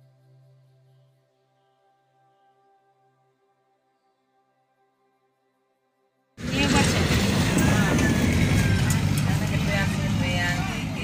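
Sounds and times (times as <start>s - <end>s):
loud low rumble: 6.4s - 11.0s
people's voices: 6.4s - 11.0s.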